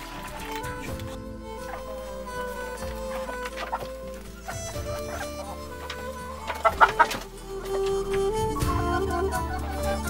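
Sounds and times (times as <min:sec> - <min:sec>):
instrumental music: 0:00.0 - 0:10.0
hen clucking: 0:01.6 - 0:10.0.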